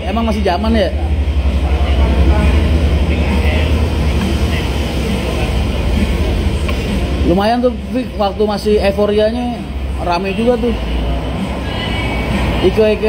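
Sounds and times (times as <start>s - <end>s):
faint voices: 0.0s - 13.0s
low mechanical rumble: 0.0s - 13.0s.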